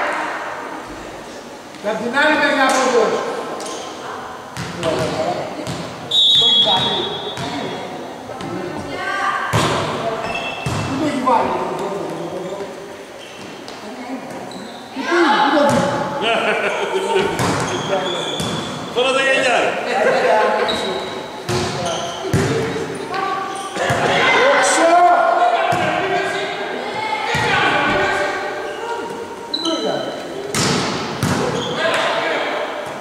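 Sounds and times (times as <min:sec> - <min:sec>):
players shouting and calling: 0:02.4 - 0:12.5, 0:14.6 - 0:33.0
whistle blast: 0:06.1 - 0:07.4
sharp ball hits: 0:30.5 - 0:31.6.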